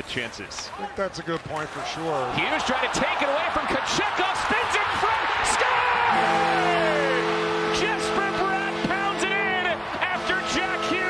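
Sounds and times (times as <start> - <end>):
arena horn chord: 5.9 - 11.0.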